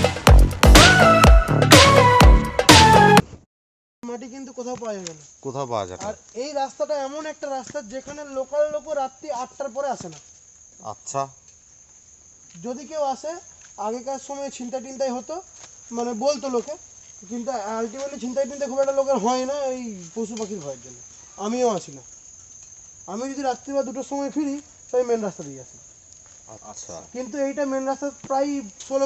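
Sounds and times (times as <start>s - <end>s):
people talking: 4.0s - 10.2s, 12.6s - 22.0s, 23.1s - 25.7s, 26.5s - 29.0s
forest insects droning: 4.0s - 29.0s.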